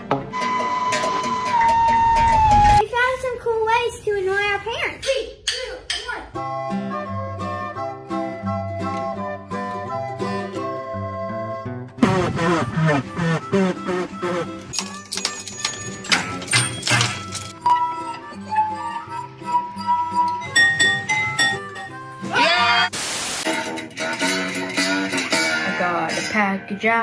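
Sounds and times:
tin can string instrument: 0.0s - 2.6s, 12.0s - 22.4s, 23.5s - 26.9s
notes blown through plastic tube: 7.4s - 14.7s.

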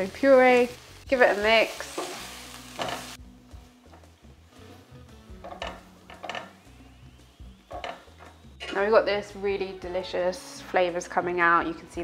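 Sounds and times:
soft background music: 0.0s - 12.0s
utensil scraping a metal pan: 5.3s - 6.6s.

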